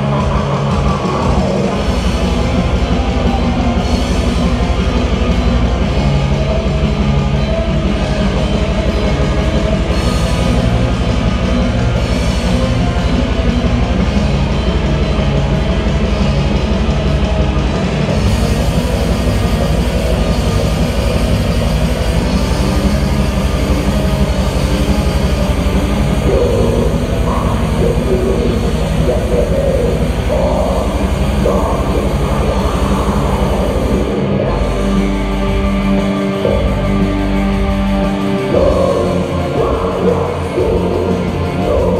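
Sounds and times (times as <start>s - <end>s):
metal band playing: 0.0s - 41.9s
vocals over band: 23.3s - 41.9s.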